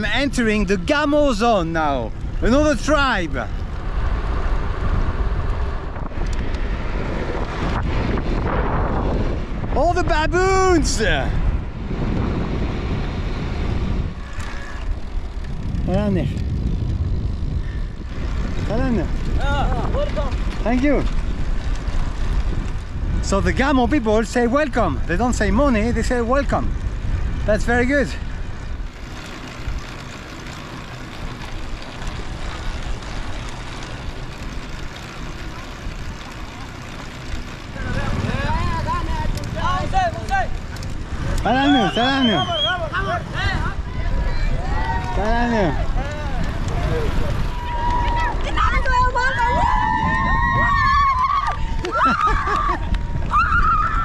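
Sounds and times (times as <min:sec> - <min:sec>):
road noise: 0:00.0 - 0:54.0
wind rushing over microphone: 0:00.0 - 0:54.0.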